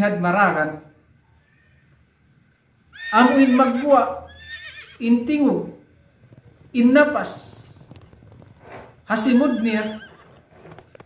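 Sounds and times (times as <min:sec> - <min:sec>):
horse whinnying: 0:03.0 - 0:05.1, 0:09.2 - 0:10.5.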